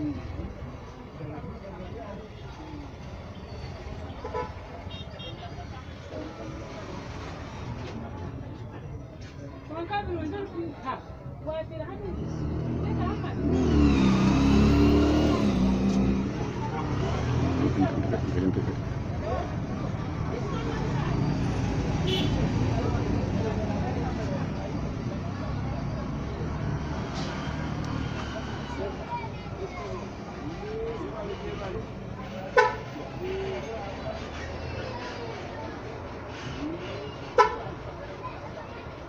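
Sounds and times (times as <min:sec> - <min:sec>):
faint background voices: 0:00.0 - 0:39.0.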